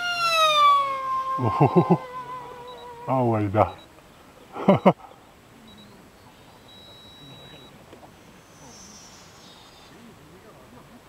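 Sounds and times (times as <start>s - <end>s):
high-pitched electric motor whine: 0.0s - 4.0s
faint outdoor background: 0.0s - 11.0s
person laughing: 1.4s - 2.5s, 4.5s - 5.0s.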